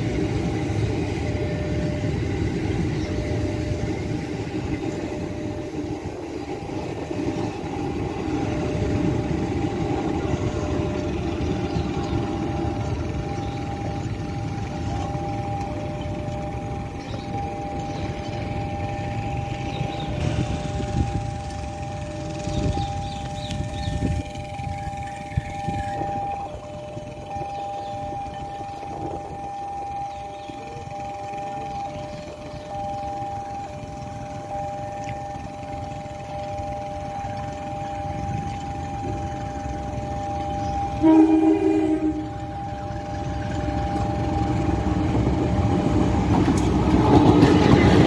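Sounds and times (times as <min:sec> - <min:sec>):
electric train rumbling past: 0:00.0 - 0:48.0
level crossing alarm two tones: 0:05.2 - 0:46.3.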